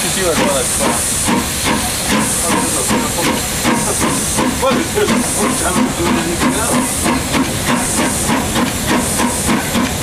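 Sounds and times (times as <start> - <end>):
steam locomotive hissing: 0.0 - 10.0.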